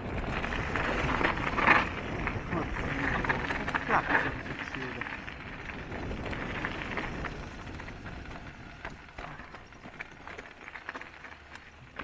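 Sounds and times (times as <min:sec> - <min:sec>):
bike rattles and clicks: 0:00.0 - 0:12.0
bike tyres crunching on gravel: 0:00.0 - 0:12.0.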